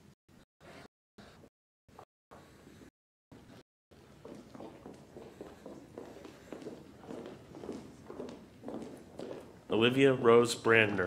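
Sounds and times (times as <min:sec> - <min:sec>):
footsteps and shuffling on stage: 0:03.4 - 0:11.0.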